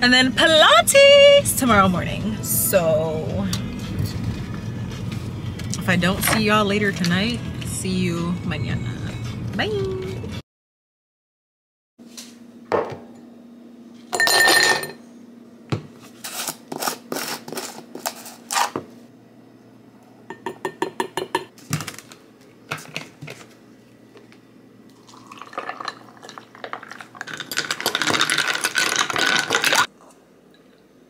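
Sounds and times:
ice cubes clinking into glass: 0:14.2 - 0:15.0, 0:25.2 - 0:29.9
juice pouring into glass: 0:24.9 - 0:29.9.

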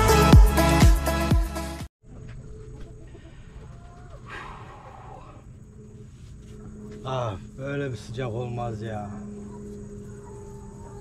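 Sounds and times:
animal call: 0:02.1 - 0:05.5, 0:08.7 - 0:11.0
high-pitched insect chirring: 0:05.1 - 0:11.0.

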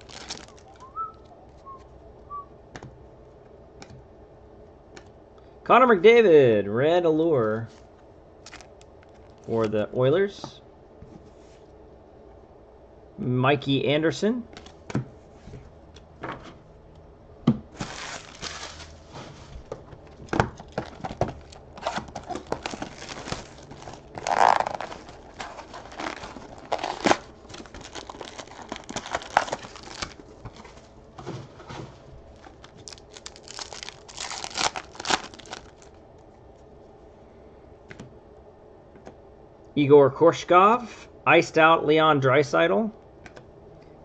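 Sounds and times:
foil wrapper crinkling and tearing: 0:00.0 - 0:01.1, 0:08.4 - 0:09.6, 0:17.8 - 0:19.1, 0:20.1 - 0:30.8, 0:32.3 - 0:36.0.

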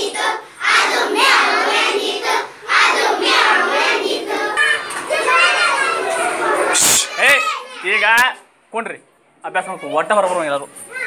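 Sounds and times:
children chattering: 0:03.0 - 0:08.2, 0:09.5 - 0:11.0.

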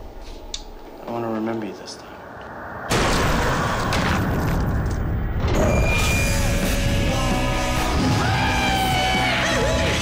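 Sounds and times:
dense wash of noise: 0:00.5 - 0:05.4
music: 0:05.5 - 0:10.0.

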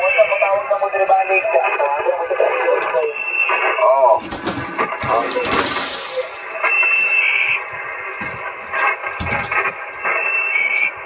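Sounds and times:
radio static hiss: 0:00.0 - 0:11.0
thin whistle: 0:06.6 - 0:07.5, 0:10.0 - 0:11.0.

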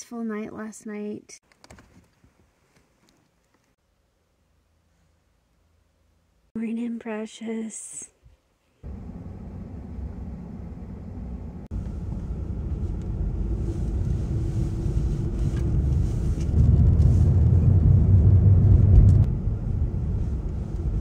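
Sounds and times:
car engine and road noise: 0:08.8 - 0:21.0.

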